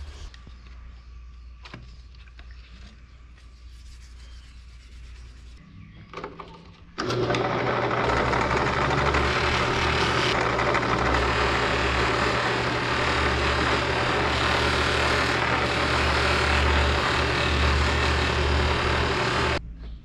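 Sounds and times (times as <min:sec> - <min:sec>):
knife polishing on buffing wheel: 0:03.6 - 0:05.6
drill press running: 0:07.0 - 0:19.6.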